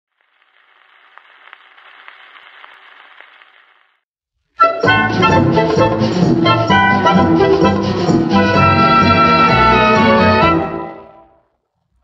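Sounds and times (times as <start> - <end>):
record clicks and crackles: 0.1 - 4.0
record surface hiss: 0.1 - 4.0.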